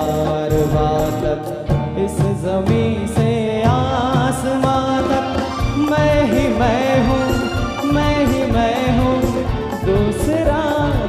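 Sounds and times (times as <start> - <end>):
band accompaniment with bass: 0.0 - 11.0
man singing into a microphone: 0.0 - 11.0.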